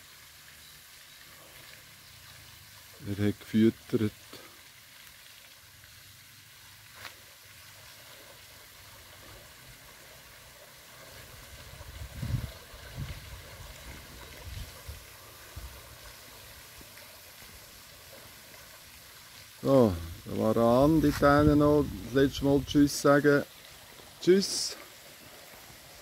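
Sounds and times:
fountain spraying water: 0.0 - 26.0.

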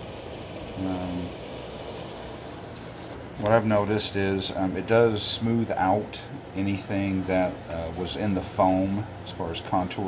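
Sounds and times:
faint hiss: 0.0 - 6.4
low room hum: 0.0 - 10.0.

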